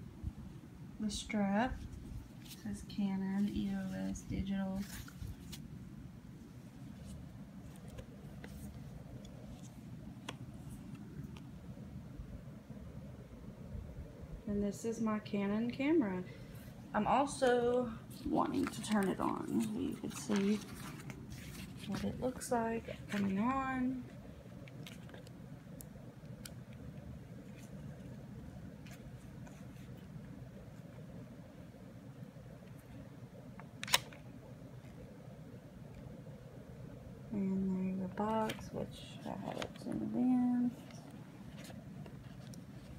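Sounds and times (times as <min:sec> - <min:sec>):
faint low rumble and hiss: 0:00.0 - 0:42.9
camera being handled: 0:24.6 - 0:25.4, 0:33.8 - 0:34.2, 0:41.5 - 0:42.9.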